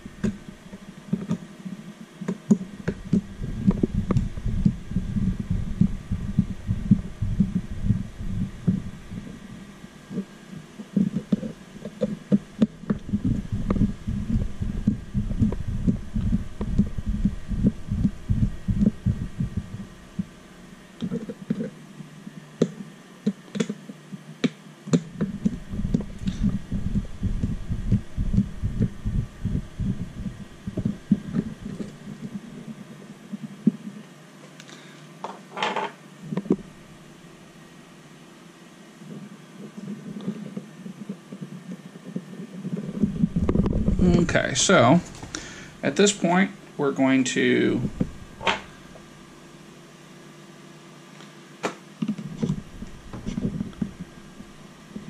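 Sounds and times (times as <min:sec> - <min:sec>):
handling rumble against microphone: 0:02.5 - 0:20.4, 0:25.0 - 0:34.0, 0:36.3 - 0:36.9, 0:39.0 - 0:45.4, 0:47.8 - 0:49.1, 0:52.0 - 0:55.0.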